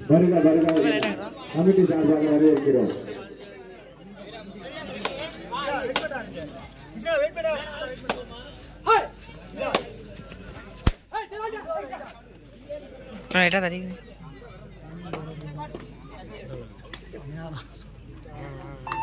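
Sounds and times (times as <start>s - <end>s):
people calling and chattering: 0.0s - 19.0s
sharp slaps: 10.8s - 11.1s.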